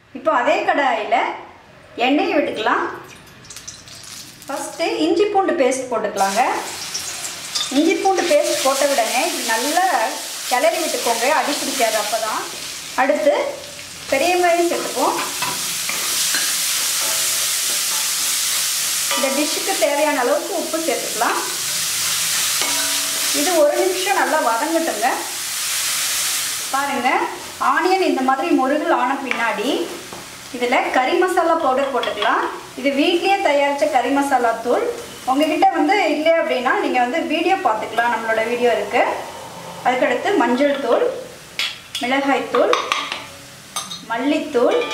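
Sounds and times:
woman talking: 0.2 - 3.0, 4.5 - 6.8, 7.7 - 15.3, 19.2 - 21.6, 23.4 - 25.3, 26.8 - 30.0, 30.6 - 41.3, 42.0 - 42.9, 44.0 - 44.9
onions sizzling in hot oil: 3.4 - 5.1, 6.2 - 39.3.

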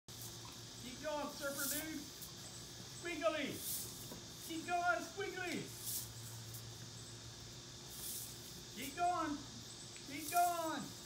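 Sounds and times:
high hiss: 0.1 - 11.0
low steady hum: 0.1 - 11.0.

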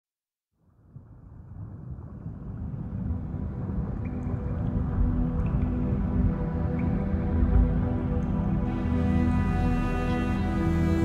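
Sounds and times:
low rumbling noise: 0.7 - 11.0.

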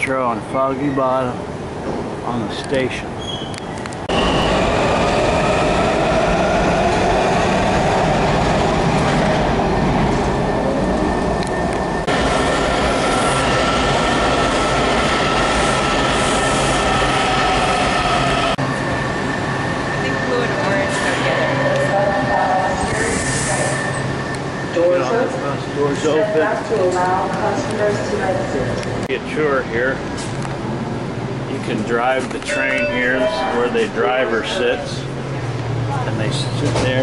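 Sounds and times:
subway train wheels rumbling: 0.0 - 37.0
high whining tones: 32.4 - 34.6.

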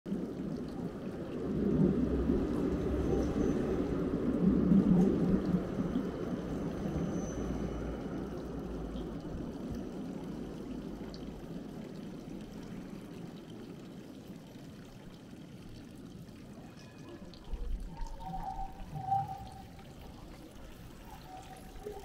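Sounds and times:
tram passing rumble: 0.2 - 12.8.

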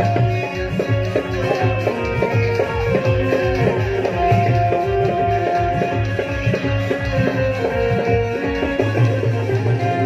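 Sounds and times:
keyboard melody: 0.0 - 10.0
steady drum beat: 0.0 - 10.0.

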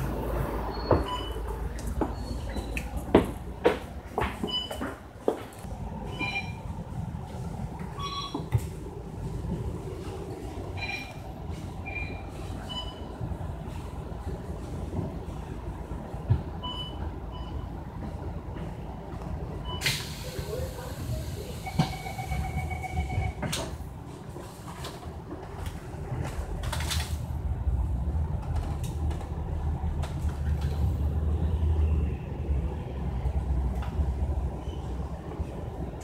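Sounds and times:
bus engine and road rumble: 0.0 - 36.0.

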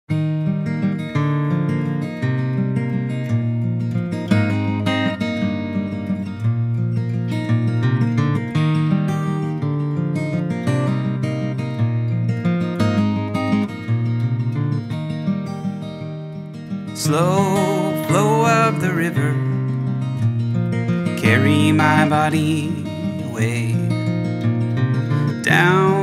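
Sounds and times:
acoustic guitar strummed and plucked: 0.1 - 26.0.

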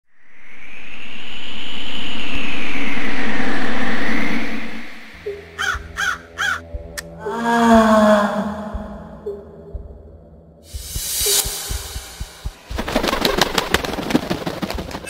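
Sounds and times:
low drone: 0.0 - 12.9
wind-like rushing with whistle: 0.1 - 5.3
raven cawing: 5.5 - 9.2
person gasping: 7.0 - 9.2.

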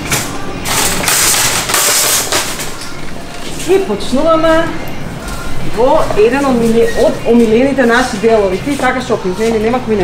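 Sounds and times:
shopping cart rattling: 0.0 - 4.2, 5.9 - 10.0.

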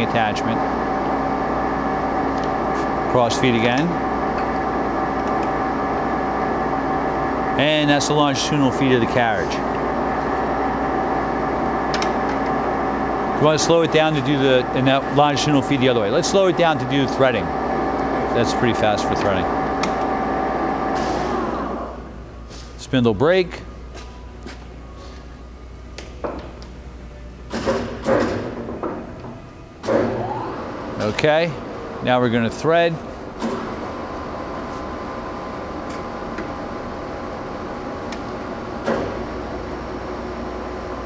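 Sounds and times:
lathe gear whine: 0.0 - 22.4, 29.8 - 41.0
low motor hum: 0.0 - 22.6, 28.4 - 41.0
levers clicking and clunking: 27.5 - 30.2.

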